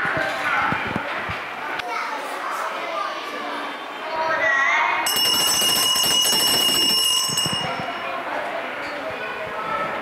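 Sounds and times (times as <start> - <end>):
bell ringing rapidly: 5.1 - 8.2.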